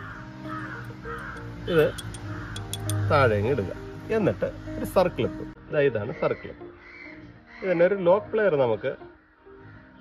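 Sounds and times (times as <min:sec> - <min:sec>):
crow cawing: 0:00.0 - 0:03.2, 0:06.0 - 0:08.3, 0:09.1 - 0:10.0
background music: 0:00.0 - 0:10.0.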